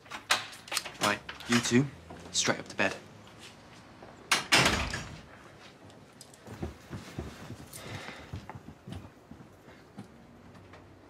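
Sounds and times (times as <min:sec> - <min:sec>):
children's footsteps on stairs: 0:06.4 - 0:11.0.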